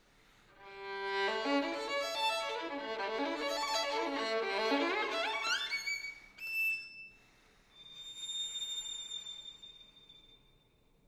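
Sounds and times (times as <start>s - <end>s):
solo violin high notes: 0.6s - 6.4s.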